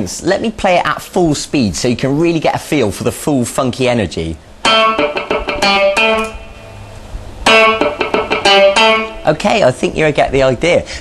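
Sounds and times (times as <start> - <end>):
electric guitar funk rhythm: 4.5 - 9.7.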